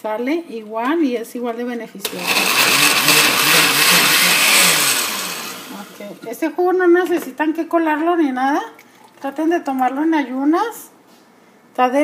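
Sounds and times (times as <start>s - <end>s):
blender motor churning liquid: 2.1s - 6.2s.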